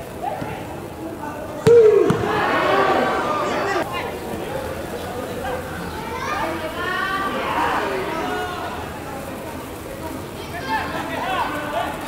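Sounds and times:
players shouting: 0.1s - 9.2s.

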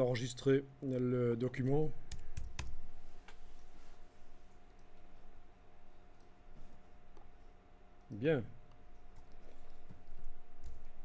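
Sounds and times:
faint electrical hum: 0.0s - 11.0s
computer mouse clicking: 2.1s - 3.4s.

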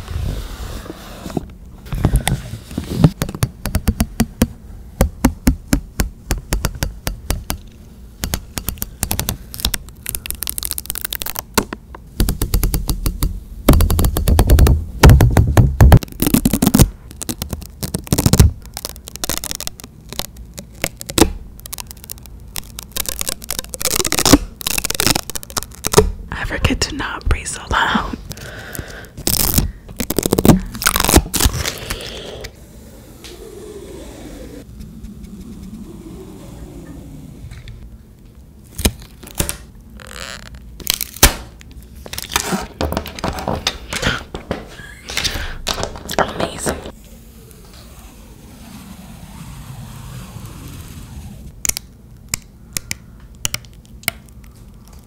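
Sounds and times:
sticky tape crackling and peeling: 7.6s - 12.9s, 15.9s - 26.3s, 28.3s - 32.5s, 38.6s - 44.2s, 46.9s - 55.0s.

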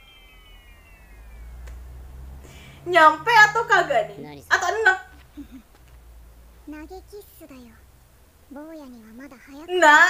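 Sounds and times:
layered high tone gliding downward: 0.0s - 4.5s
low hum: 0.0s - 6.7s.

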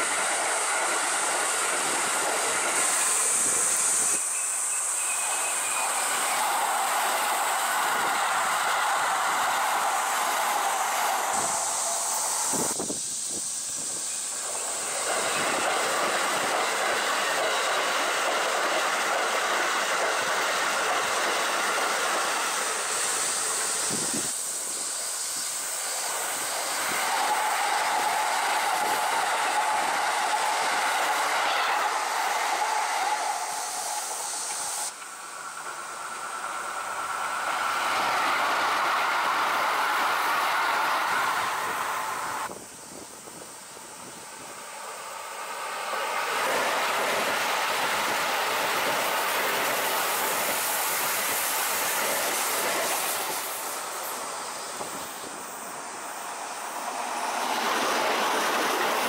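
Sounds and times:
train wheels rumbling on rails: 0.0s - 59.0s
train whine: 0.0s - 59.0s.

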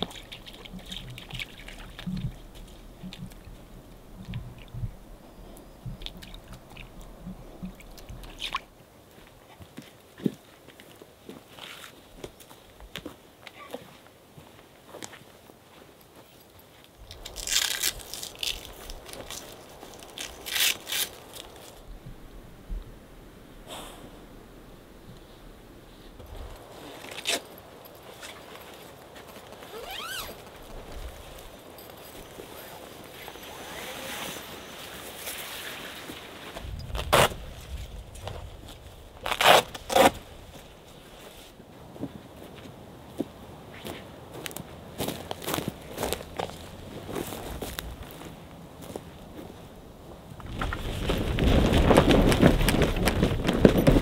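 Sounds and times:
canvas being unrolled: 17.2s - 21.8s, 28.1s - 31.4s, 32.4s - 41.6s, 50.5s - 54.0s.

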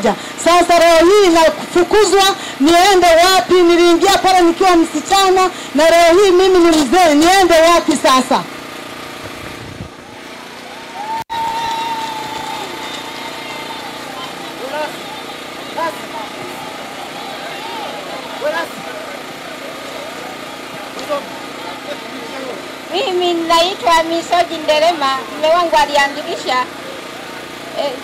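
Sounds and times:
distant voices: 0.0s - 28.0s
steady hum: 0.0s - 28.0s
murmur of a crowd: 9.8s - 28.0s.

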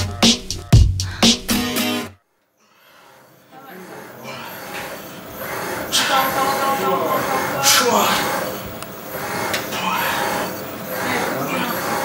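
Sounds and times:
machine mechanical whir: 4.6s - 12.0s.

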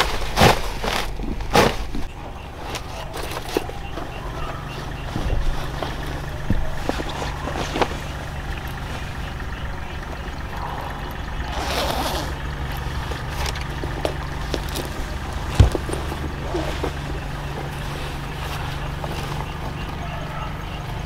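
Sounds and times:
clothing rustling: 0.0s - 9.3s, 13.0s - 19.8s
low rumble: 5.1s - 19.9s
zip drawn up: 11.5s - 12.4s.

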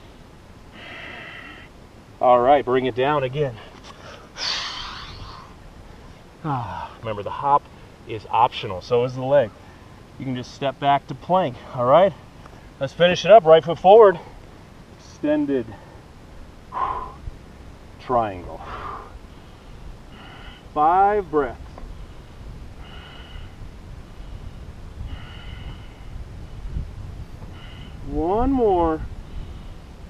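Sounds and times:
man exhaling forcefully: 4.0s - 5.6s, 16.7s - 17.2s.

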